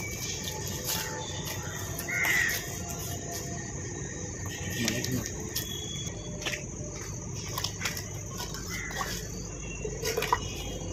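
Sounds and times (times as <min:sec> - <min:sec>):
faint high insect drone: 0:00.0 - 0:10.9
outdoor ambience: 0:00.0 - 0:10.9
crow cawing: 0:01.6 - 0:02.7, 0:08.6 - 0:09.1.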